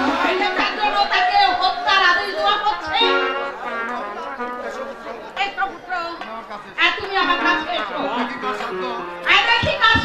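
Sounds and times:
actors speaking on stage: 0:00.0 - 0:10.0.

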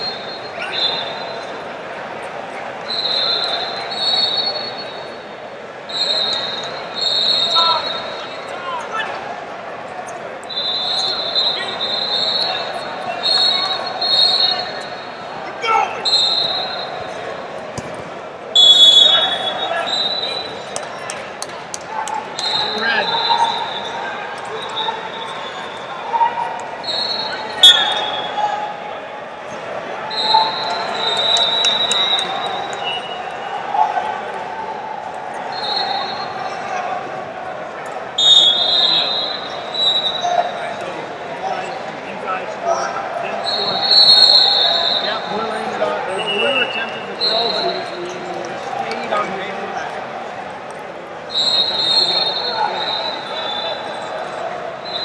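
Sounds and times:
referee whistle blasts: 0:00.0 - 0:01.6, 0:02.8 - 0:05.2, 0:05.9 - 0:08.5, 0:10.4 - 0:17.2, 0:18.6 - 0:20.7, 0:22.4 - 0:28.8, 0:30.0 - 0:33.6, 0:35.4 - 0:36.7, 0:38.2 - 0:40.9, 0:43.3 - 0:48.0, 0:51.3 - 0:55.0
voices shouting and chattering: 0:00.0 - 0:55.0.

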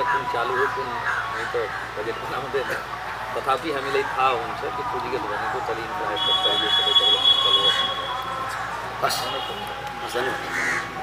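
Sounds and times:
man talking: 0:00.0 - 0:08.0, 0:09.0 - 0:10.6.

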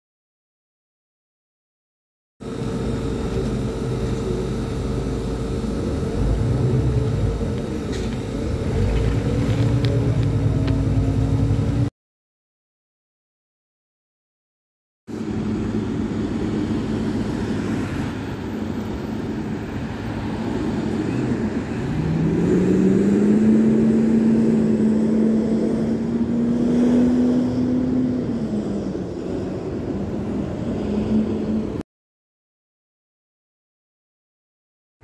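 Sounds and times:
bus running noise: 0:02.4 - 0:11.9, 0:15.1 - 0:31.8
bus whine rising in pitch: 0:02.4 - 0:11.9, 0:15.1 - 0:31.8.

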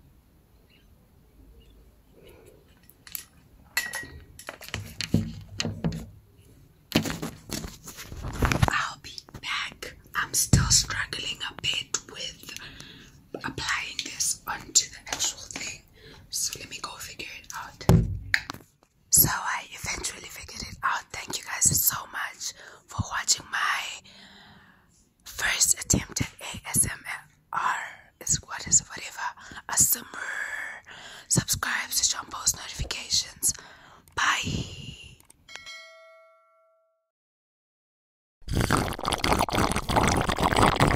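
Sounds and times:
woman whispering: 0:08.6 - 0:12.6, 0:13.4 - 0:17.9, 0:19.1 - 0:24.0, 0:25.3 - 0:35.2.

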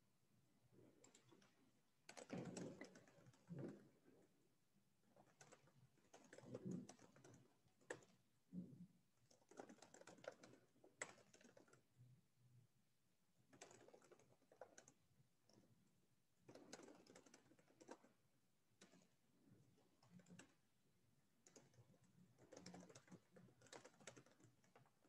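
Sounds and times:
faint computer keyboard typing: 0:00.8 - 0:04.2, 0:05.1 - 0:12.1, 0:13.4 - 0:25.0.

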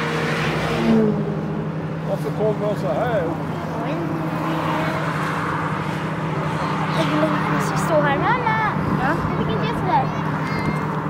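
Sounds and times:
traffic engine hum: 0:00.0 - 0:11.0
people's voices: 0:02.0 - 0:05.3, 0:06.3 - 0:11.0.

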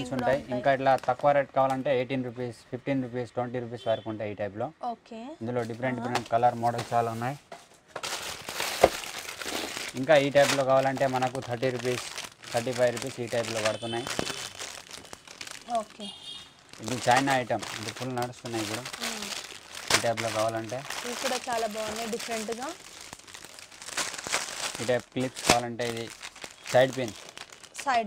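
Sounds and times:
people talking: 0:00.0 - 0:07.4, 0:10.0 - 0:12.0, 0:12.6 - 0:14.4, 0:15.7 - 0:16.1, 0:16.8 - 0:19.3, 0:20.0 - 0:22.8, 0:27.8 - 0:28.0
plastic packets crinkling: 0:05.6 - 0:28.0.

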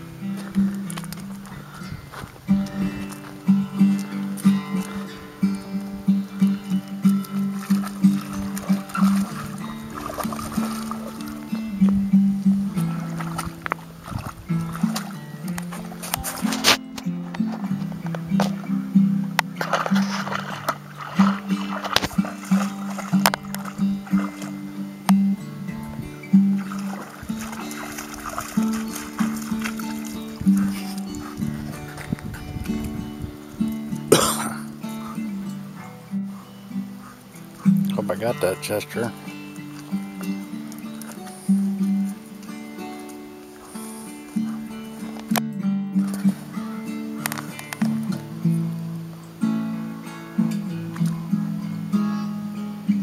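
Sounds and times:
acoustic guitar plucked notes: 0:00.0 - 0:53.0.

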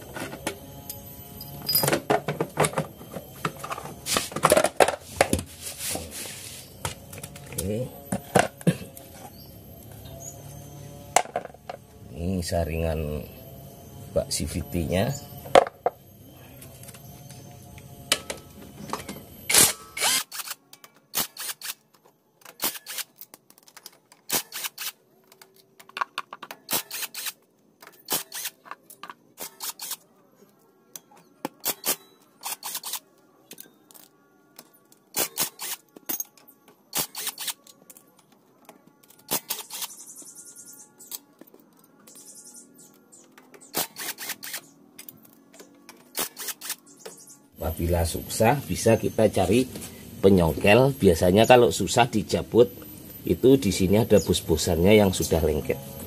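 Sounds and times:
metallic clinks of tools and bolts: 0:00.2 - 0:04.9, 0:33.5 - 0:38.4.

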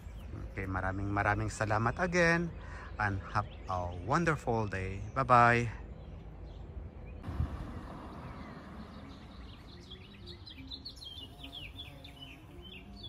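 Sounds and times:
low outdoor rumble: 0:00.0 - 0:10.6
songbirds chirping: 0:00.0 - 0:13.0.

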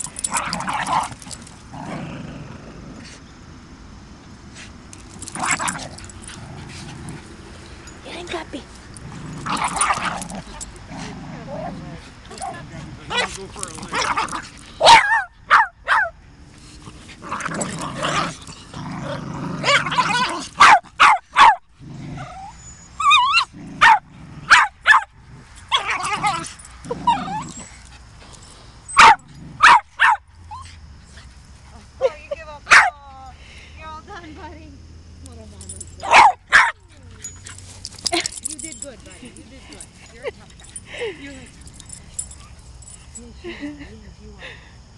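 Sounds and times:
dogs play growling: 0:00.0 - 0:03.6, 0:04.2 - 0:14.9, 0:16.3 - 0:21.0, 0:21.7 - 0:32.0, 0:36.9 - 0:43.6
small dogs barking and yipping: 0:05.0 - 0:18.8, 0:19.6 - 0:33.0, 0:35.6 - 0:43.2.

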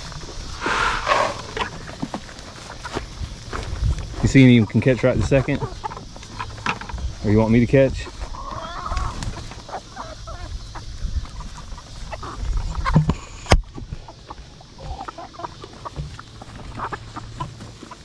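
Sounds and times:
chickens clucking: 0:00.0 - 0:18.0.

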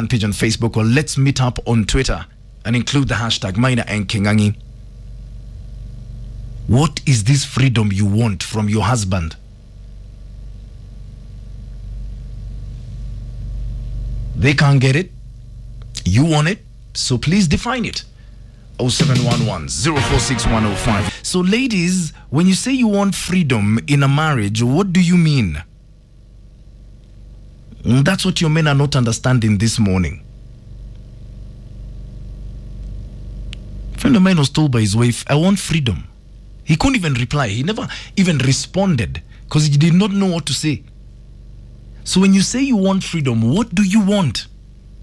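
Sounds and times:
low droning hum: 0:00.0 - 0:45.0.

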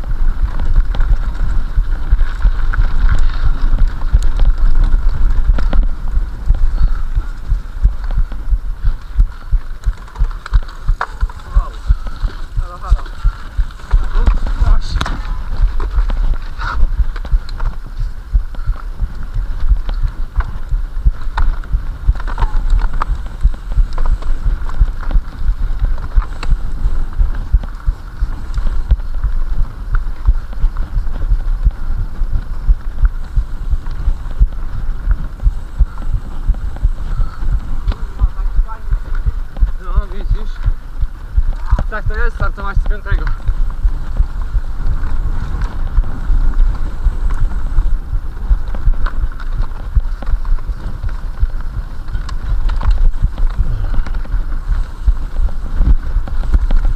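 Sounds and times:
bike rumbling over rough trail: 0:00.0 - 0:56.9
knocks and rattles of bike: 0:00.0 - 0:56.9.

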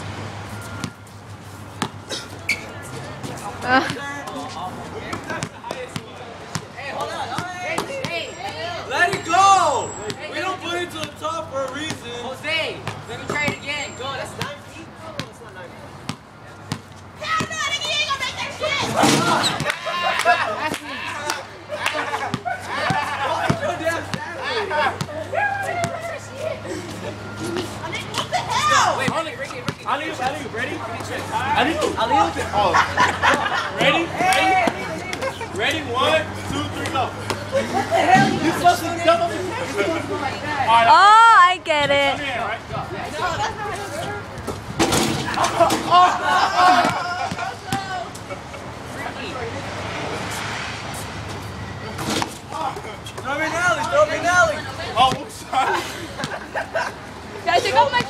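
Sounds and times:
young people chattering: 0:00.6 - 0:58.0.

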